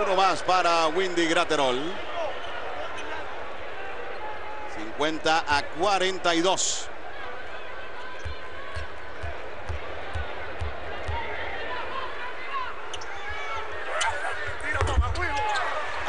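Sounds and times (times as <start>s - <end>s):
murmur of arena crowd: 0.0s - 16.0s
crowd shouting: 5.8s - 16.0s.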